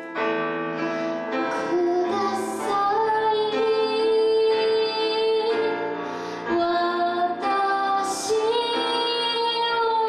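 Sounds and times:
grand piano: 0.0 - 10.0
woman singing a ballad: 1.4 - 10.0.

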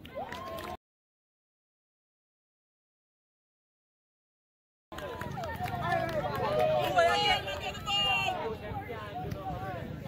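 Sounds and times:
people shouting outdoors: 5.0 - 9.0.

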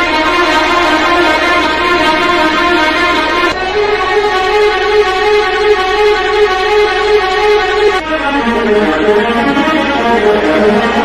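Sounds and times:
background music with sustained notes: 0.0 - 11.0.

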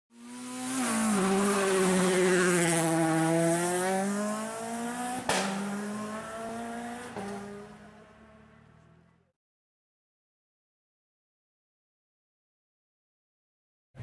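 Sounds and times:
race car engine: 0.1 - 9.3.

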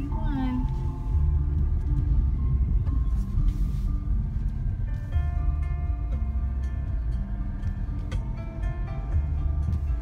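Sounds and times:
car rumbling inside cabin: 0.0 - 10.0
music in held notes: 0.0 - 10.0.

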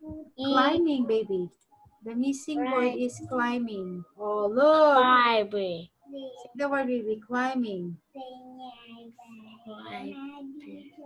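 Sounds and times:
child's sing-song voice: 0.0 - 1.2, 2.4 - 3.6, 6.1 - 6.6, 8.2 - 11.0
people talking: 0.0 - 1.5, 2.1 - 11.0.

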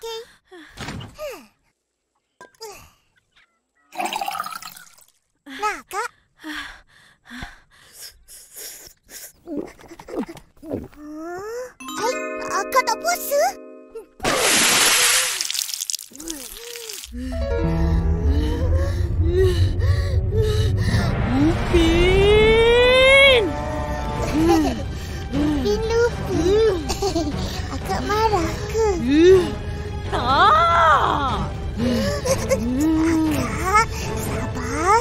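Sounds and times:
water pouring into a mug: 4.0 - 5.1
deep low rumble: 17.2 - 24.0.

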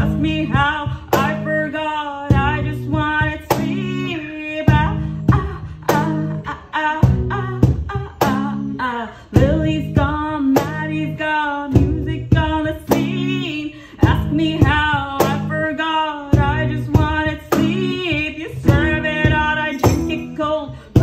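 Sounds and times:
cajon beat: 0.0 - 21.0
woman singing: 0.0 - 21.0
strummed acoustic guitar: 16.3 - 21.0.

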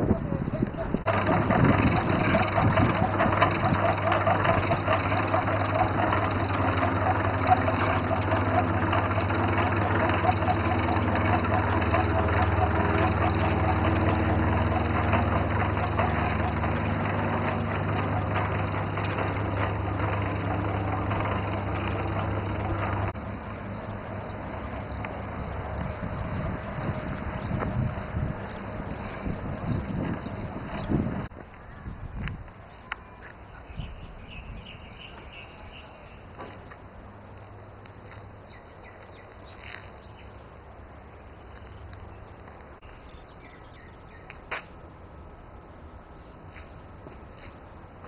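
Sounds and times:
small engine running: 0.0 - 31.3.

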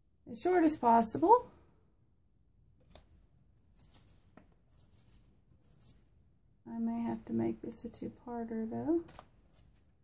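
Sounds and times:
rustling of cards: 2.8 - 6.0.

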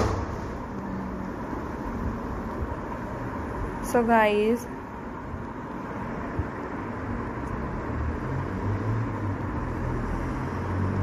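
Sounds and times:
woman's voice: 3.8 - 4.8.

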